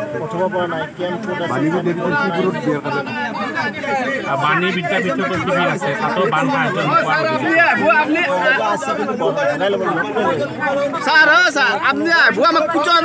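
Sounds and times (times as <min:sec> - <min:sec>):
people talking at once: 0:00.0 - 0:13.0.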